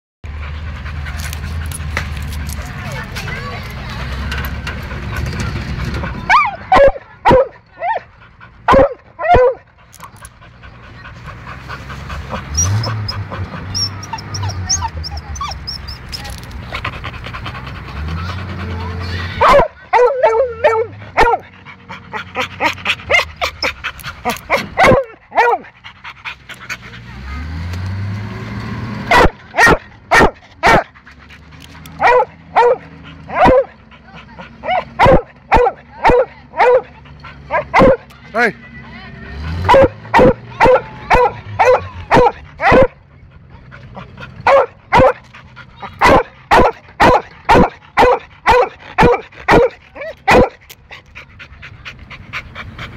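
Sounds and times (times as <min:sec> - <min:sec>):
tracked vehicle engine revving: 0:00.2 - 0:52.9
dog barking: 0:06.3 - 0:08.1, 0:08.7 - 0:09.6, 0:19.4 - 0:21.5, 0:24.5 - 0:25.7, 0:29.1 - 0:30.9, 0:32.0 - 0:33.8, 0:34.6 - 0:38.1, 0:39.6 - 0:43.0, 0:44.4 - 0:45.2, 0:45.8 - 0:50.6.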